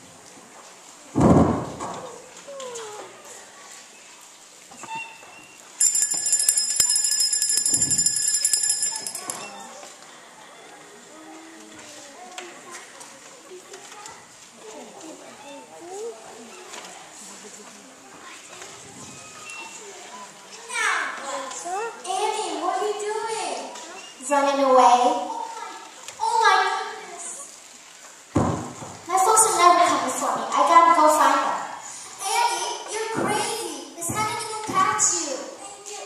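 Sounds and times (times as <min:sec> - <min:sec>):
high jingling rattle: 0:05.8 - 0:09.7.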